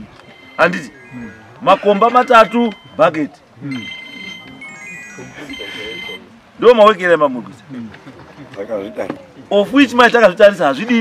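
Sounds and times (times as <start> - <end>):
mobile phone ringtone: 0.0 - 6.4.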